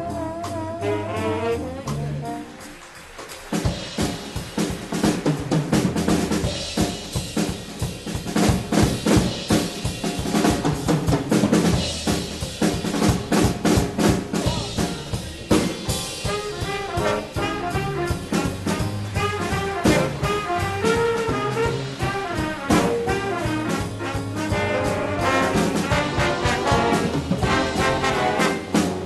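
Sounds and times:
drum kit solo: 0.0 - 29.0
jazz big band playing: 0.0 - 29.0.

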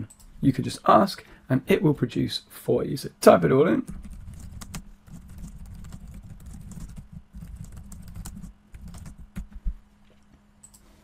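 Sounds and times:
rapid typing on keyboard: 3.9 - 9.6.

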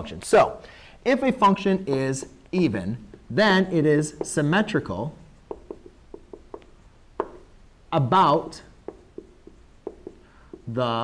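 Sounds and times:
marker tapping on whiteboard: 1.8 - 2.3, 3.8 - 7.6, 8.2 - 11.0.

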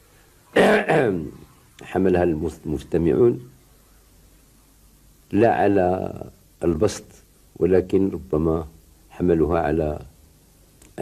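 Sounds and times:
man clearing his throat: 0.6 - 1.2.

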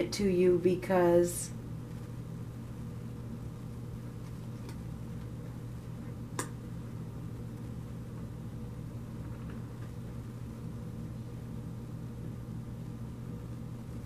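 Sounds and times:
low room hum: 0.0 - 14.0.

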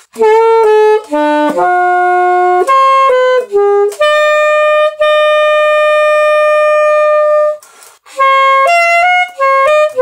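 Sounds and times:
alto saxophone long note: 0.2 - 7.6, 8.2 - 10.0
faint breathy hiss: 7.6 - 8.2.

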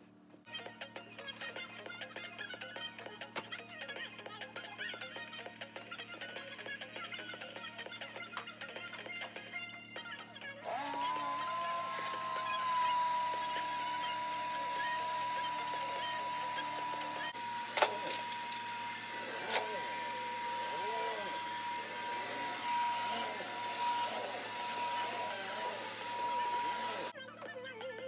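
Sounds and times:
vacuum cleaner motor whining: 10.6 - 27.2.

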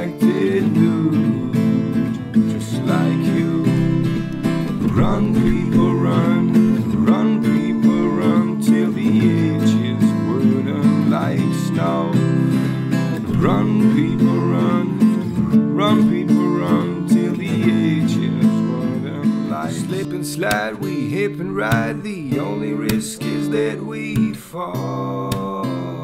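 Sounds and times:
sliding melody line: 0.0 - 24.2
strummed acoustic guitar: 0.0 - 26.0.

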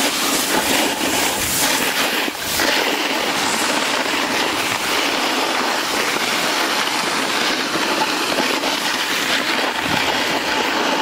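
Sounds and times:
snowboard scraping over snow: 0.0 - 11.0
wind buffeting microphone: 0.0 - 11.0.

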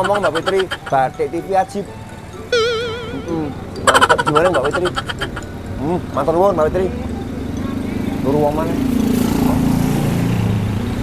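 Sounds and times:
small vehicle engine passing: 2.1 - 11.0.

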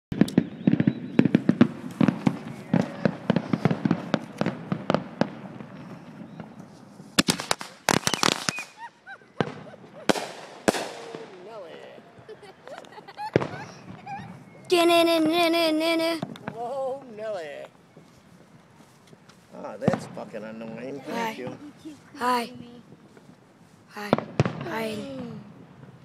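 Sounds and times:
single firecracker bangs: 0.1 - 6.6, 7.2 - 8.8, 9.4 - 12.2, 13.2 - 14.4, 19.8 - 20.8, 24.0 - 26.0
firecrackers popping: 0.1 - 26.0.

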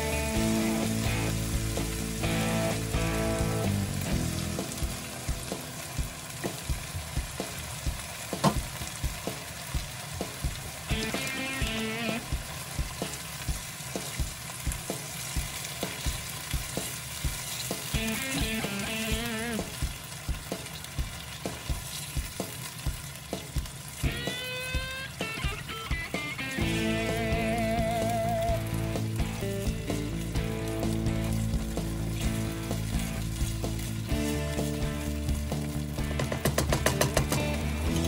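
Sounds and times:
background music: 0.0 - 6.4, 10.9 - 12.4, 24.1 - 38.0
food sizzling in frying pan: 0.0 - 38.0
sharp pops: 7.4 - 11.2.

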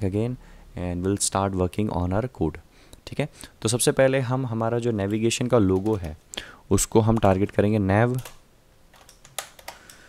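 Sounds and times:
computer keyboard keystrokes: 5.6 - 6.2, 8.1 - 10.0.

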